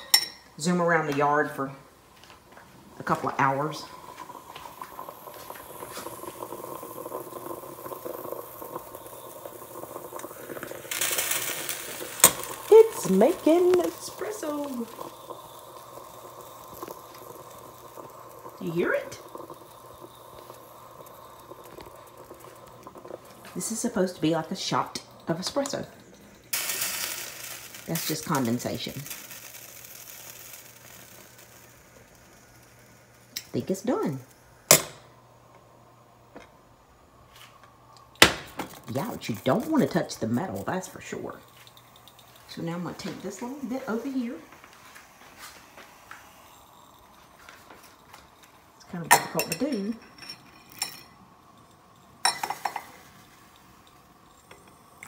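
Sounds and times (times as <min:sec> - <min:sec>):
moka pot bubbling: 0:00.0 - 0:55.0.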